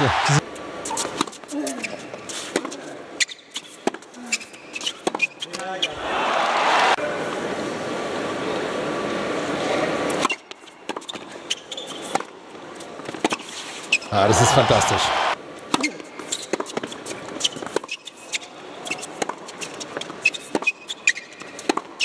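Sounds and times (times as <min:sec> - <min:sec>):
crowd applause: 0:00.0 - 0:00.4, 0:14.1 - 0:15.4.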